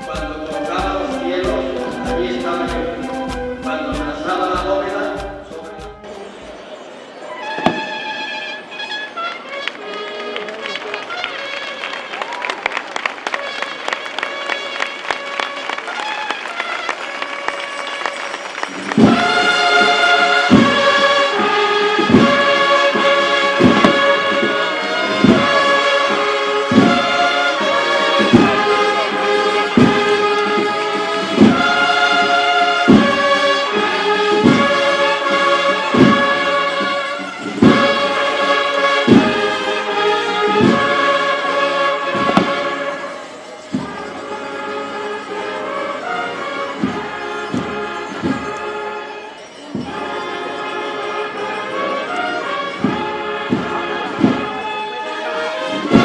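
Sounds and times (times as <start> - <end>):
heavy drum beat: 0.0 - 6.6, 18.9 - 42.8, 52.7 - 54.7
brass band playing march: 0.0 - 56.0
crowd noise: 0.0 - 56.0.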